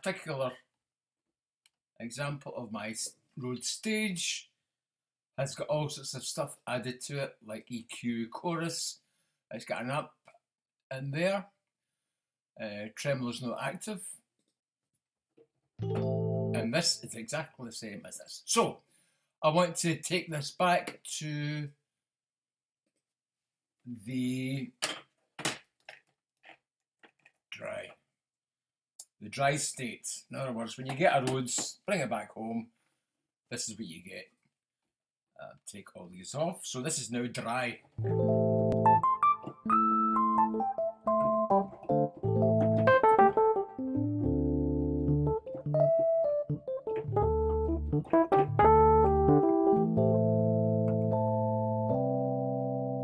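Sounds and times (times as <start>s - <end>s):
keyboard keys clicking: 15.8s - 16.6s, 38.0s - 52.1s
electric piano chords: 15.8s - 16.7s, 38.0s - 53.0s.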